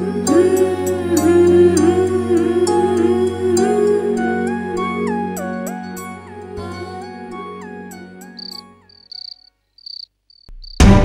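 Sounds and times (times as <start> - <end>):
soft music with gliding notes: 0.0 - 9.0
crickets chirping: 8.2 - 10.8
loud music: 10.8 - 11.0.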